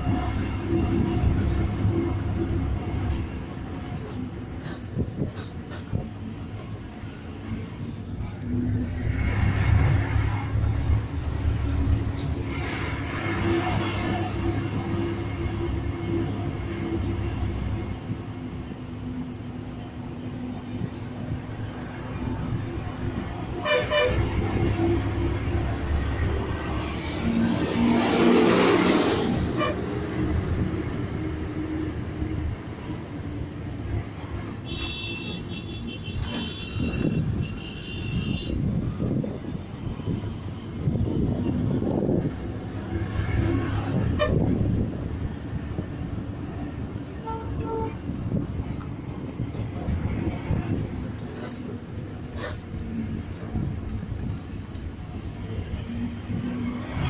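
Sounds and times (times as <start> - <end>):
bus engine and road noise: 0.0 - 57.0
high-pitched horn toots: 23.6 - 24.3, 29.4 - 30.0.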